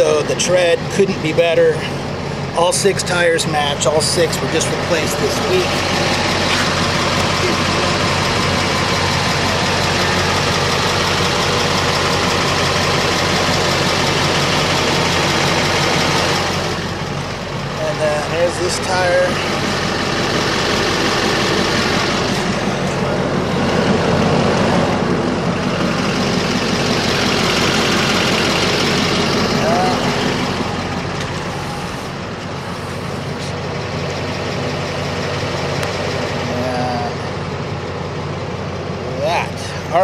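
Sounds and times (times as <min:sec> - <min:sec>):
large vehicle engine idling: 0:00.0 - 0:40.0.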